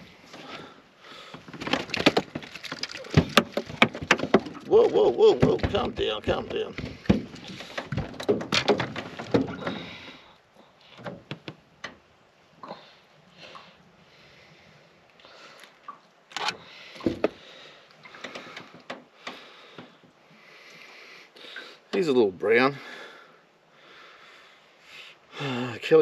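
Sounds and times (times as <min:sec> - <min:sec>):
fish flapping on metal boat floor: 0:01.4 - 0:04.7, 0:05.3 - 0:09.9.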